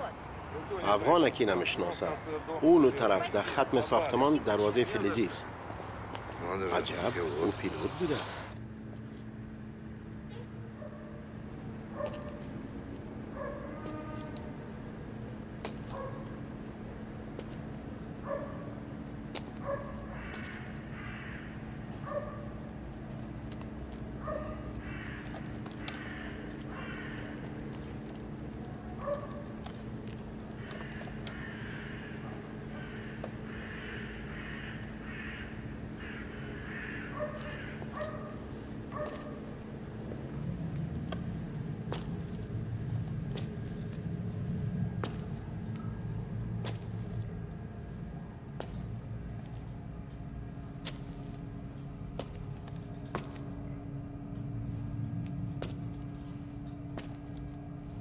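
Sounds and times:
steady low hum: 0.0 - 58.0
birds calling: 19.6 - 22.7, 24.2 - 29.6, 30.4 - 39.5.

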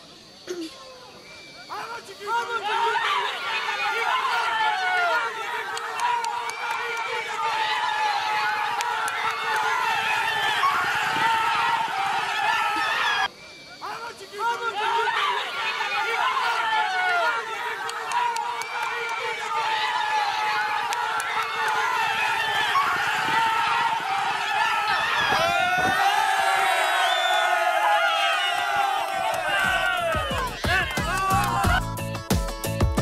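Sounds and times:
crowd shouting and cheering: 1.1 - 33.0.

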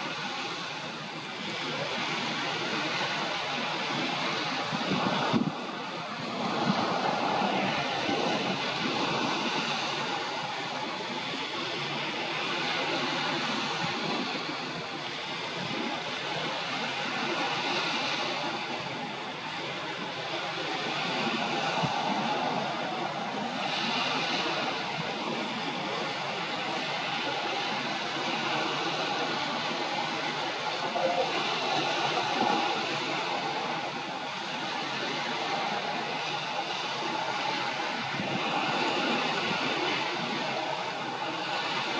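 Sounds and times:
water by the shore: 0.0 - 41.9
wind: 0.0 - 41.9.

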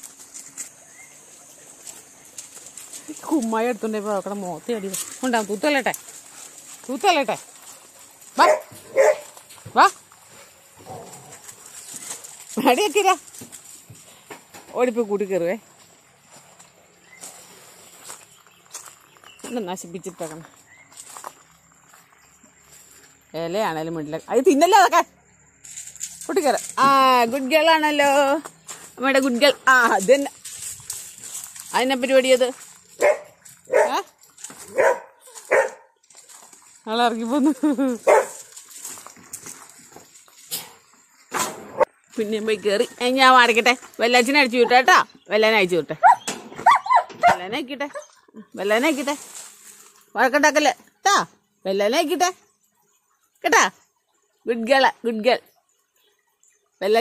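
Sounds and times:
dog barking high: 8.4 - 9.4, 33.0 - 34.1, 34.7 - 36.0, 38.0 - 38.4, 46.0 - 47.4.

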